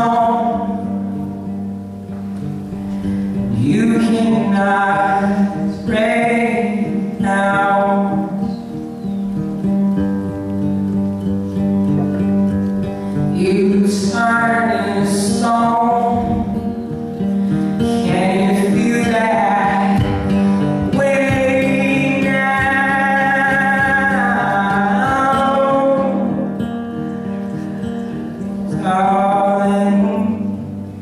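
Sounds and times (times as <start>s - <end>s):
man singing: 0.0s - 1.1s, 3.4s - 8.8s, 13.3s - 16.9s, 17.8s - 26.7s, 28.6s - 31.0s
acoustic guitar chords: 0.0s - 31.0s.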